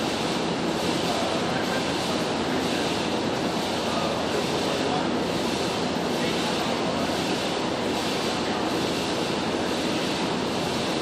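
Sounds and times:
faint indistinct voices: 1.0s - 7.6s.

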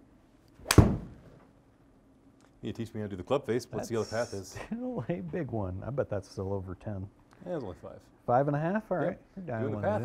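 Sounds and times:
golf club striking ball: 0.6s - 1.2s.

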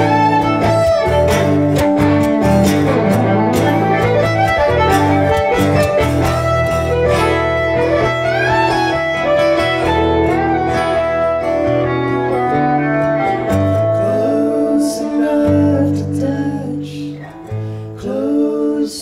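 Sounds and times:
bowed fiddle melody: 0.0s - 14.3s
strummed acoustic guitar: 0.0s - 18.4s.

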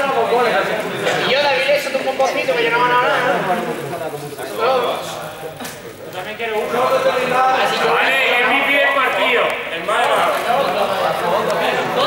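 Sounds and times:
young men talking and calling out: 0.0s - 12.0s.

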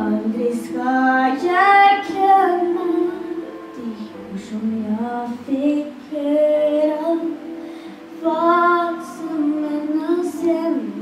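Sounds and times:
girl singing into a microphone: 0.0s - 11.0s.

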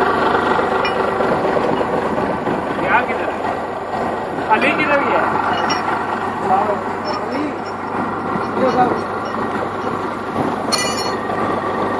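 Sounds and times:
crane engine running: 0.0s - 11.9s.

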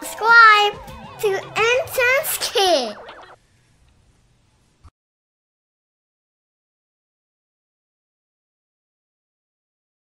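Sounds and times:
child's warbling voice: 0.0s - 3.0s.

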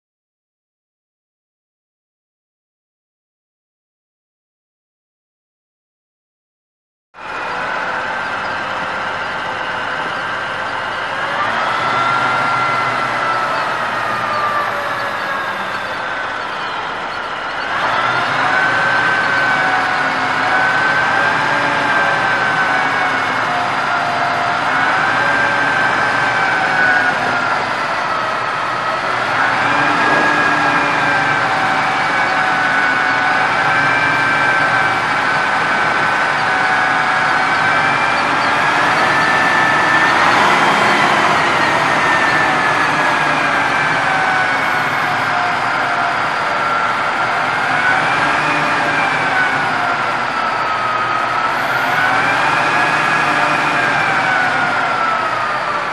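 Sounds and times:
diesel engine running: 7.2s - 55.9s
hydraulic pump whine: 7.2s - 55.9s.

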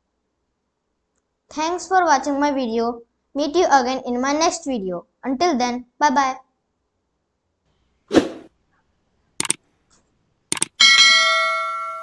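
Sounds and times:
short burst of clicks: 9.4s - 9.6s, 10.5s - 10.8s
bright bell ding: 10.8s - 12.0s.

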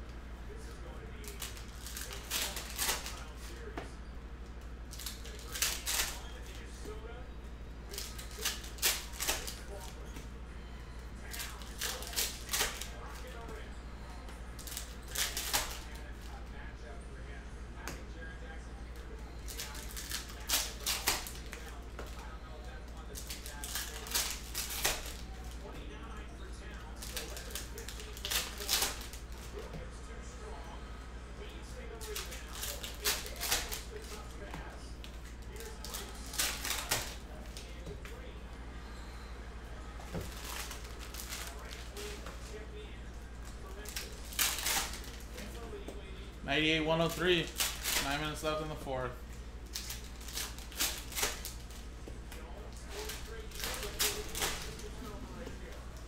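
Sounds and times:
low steady hum: 0.0s - 56.0s
card pack wrappers crinkling: 1.2s - 3.6s, 23.0s - 25.7s, 26.8s - 29.6s, 40.2s - 42.3s, 43.4s - 45.6s, 46.5s - 48.8s, 52.7s - 55.2s.

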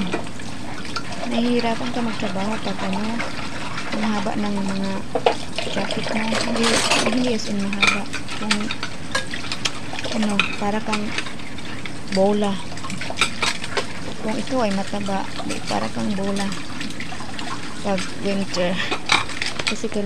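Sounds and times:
tap water running into sink: 0.0s - 20.0s.

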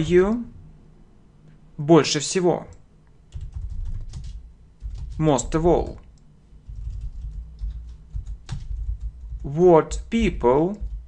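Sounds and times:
typing on computer keyboard: 3.3s - 6.0s, 6.6s - 9.5s, 10.7s - 11.0s.

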